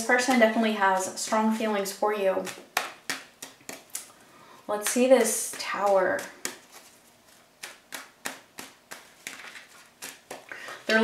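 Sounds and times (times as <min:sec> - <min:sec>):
cards clicking and slapping on table: 0:02.4 - 0:04.1, 0:04.8 - 0:11.0.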